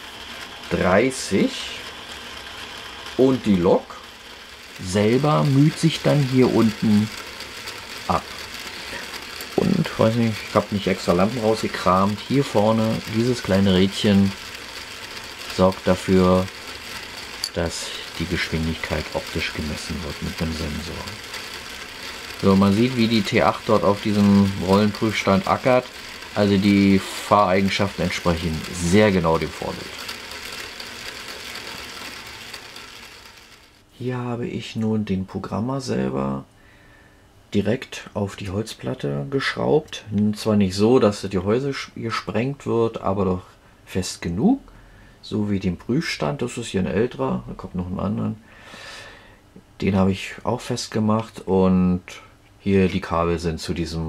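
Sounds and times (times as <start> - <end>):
fine mechanical rattle: 0.0 - 33.9
model locomotive motor running: 0.0 - 34.2, 44.8 - 51.4, 52.7 - 54.0.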